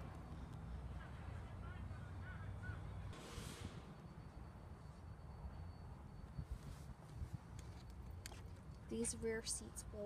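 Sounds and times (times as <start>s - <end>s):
wind rumble on microphone: 6.2s - 7.7s.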